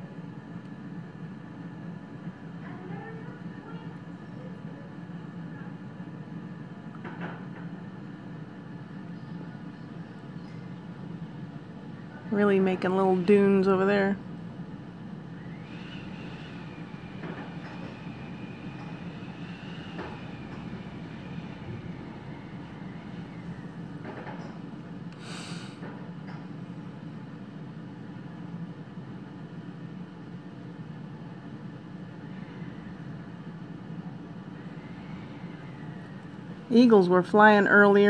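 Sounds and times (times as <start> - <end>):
faint wind whistle: 15.3 - 23.8, 34.4 - 36.5
strong wind blowing: 15.5 - 25.0
brief hiss: 25.2 - 25.8.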